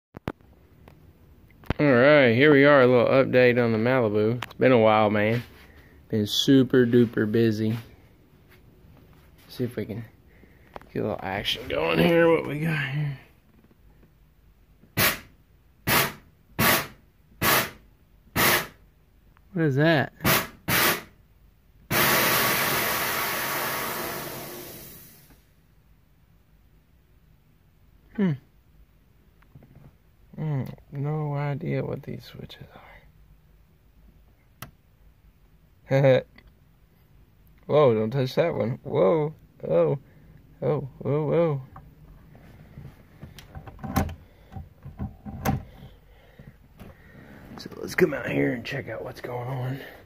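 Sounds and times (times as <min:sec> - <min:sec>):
sharp knock: 0:15.0 - 0:15.3
purge valve hissing: 0:21.9 - 0:25.4.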